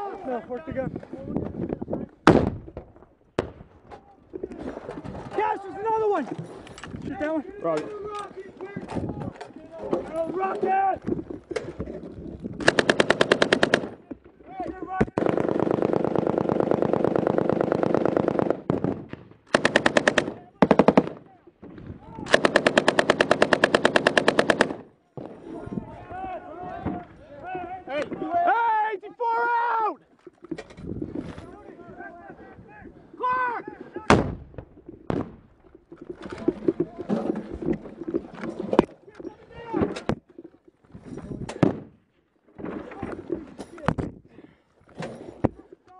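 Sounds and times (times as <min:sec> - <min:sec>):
single gunshots: 0:02.2 - 0:02.7, 0:34.1 - 0:35.4
machine gun firing bursts: 0:12.6 - 0:14.0, 0:15.2 - 0:21.2, 0:22.3 - 0:24.9.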